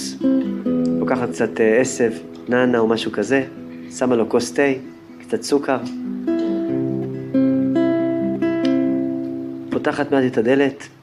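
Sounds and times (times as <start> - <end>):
acoustic guitar plucked notes: 0.0 - 10.9.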